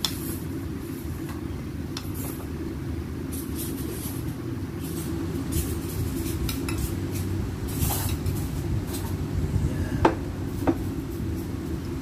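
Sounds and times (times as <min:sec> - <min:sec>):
metal utensils scraping plates: 0:03.4 - 0:09.2
steady low rumble: 0:03.9 - 0:12.0.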